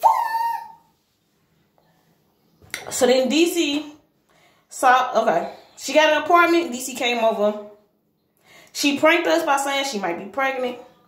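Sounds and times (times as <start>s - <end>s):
woman exclaiming woo: 0.0s - 0.9s.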